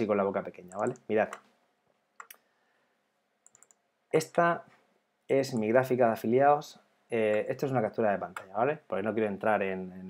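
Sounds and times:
computer mouse clicks: 0.7s - 1.5s, 2.2s - 2.4s, 3.4s - 3.8s.

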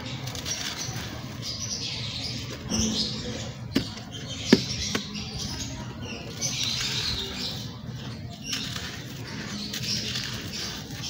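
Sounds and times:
chalk crunching and scraping: 0.0s - 11.0s.

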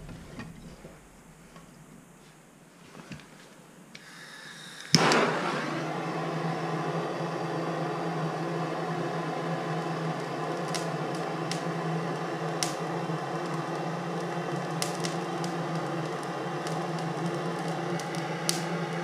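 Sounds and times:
propane torch flame hissing: 4.0s - 19.0s
torch igniter click: 4.8s - 5.9s, 9.1s - 19.0s.

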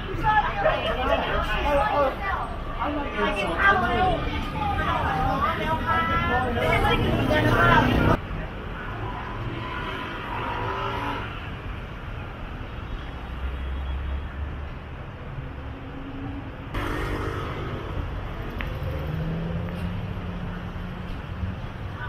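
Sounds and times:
motorbike and car engines passing: 6.1s - 8.2s, 8.9s - 11.6s, 15.9s - 22.0s.

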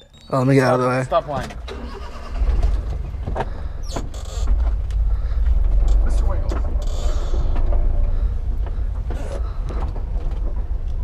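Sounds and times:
cab creaks and rattles: 0.0s - 11.0s
truck engine rumble: 0.0s - 11.0s.

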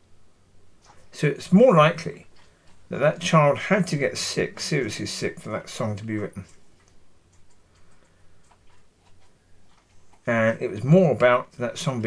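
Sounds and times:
low steady hum: 0.0s - 12.0s
faint irregular ticks and clicks: 0.8s - 12.0s.

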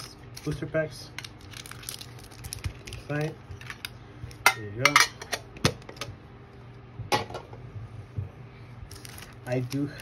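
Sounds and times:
foil packs crinkling: 0.0s - 4.0s, 8.8s - 10.0s.

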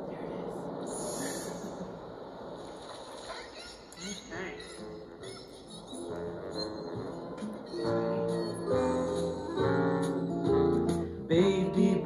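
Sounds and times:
ocean waves over a speaker: 0.0s - 3.6s.

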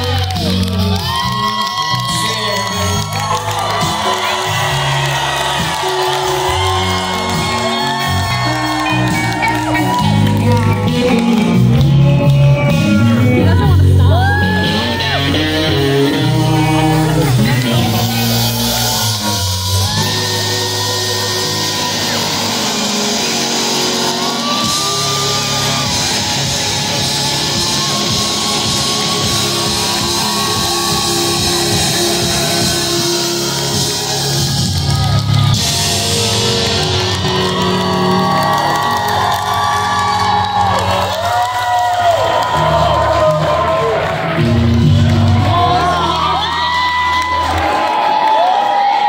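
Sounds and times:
live rock band playing: 0.0s - 41.7s
crowd whooping and shouting: 0.0s - 49.0s.

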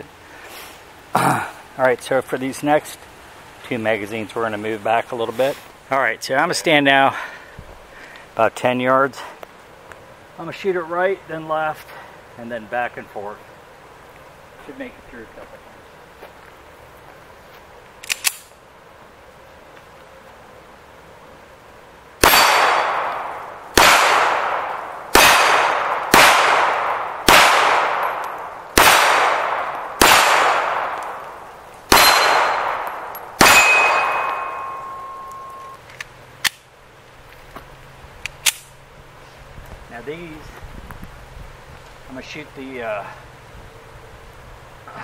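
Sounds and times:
pistol shots echoing: 22.2s - 35.6s
high ringing tone: 33.4s - 35.8s.

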